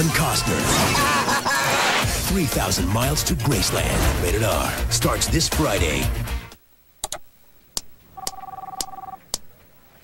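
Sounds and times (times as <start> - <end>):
electronic telephone ringing: 8.1 - 9.2.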